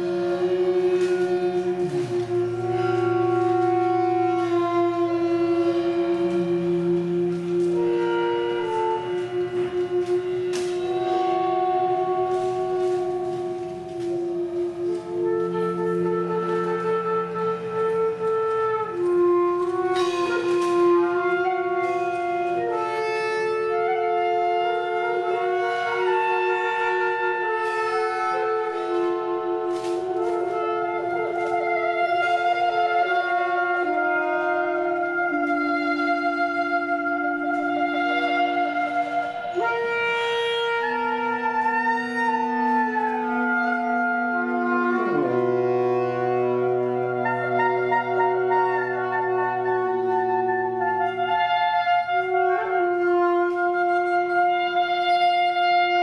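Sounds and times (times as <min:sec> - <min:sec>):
saxophone quartet holding notes: 0:00.0 - 0:56.0.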